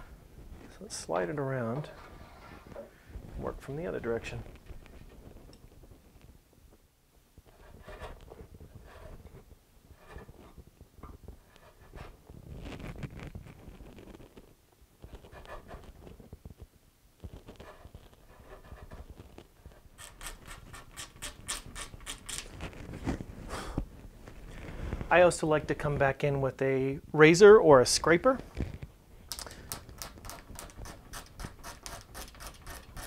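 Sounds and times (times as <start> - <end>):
chisel scraping wood: 30.2 - 33.0.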